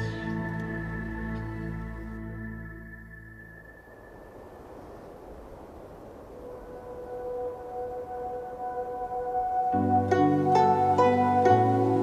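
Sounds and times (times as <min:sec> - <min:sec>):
rushing ambience noise: 0:00.0 - 0:12.0
held music notes: 0:06.9 - 0:12.0.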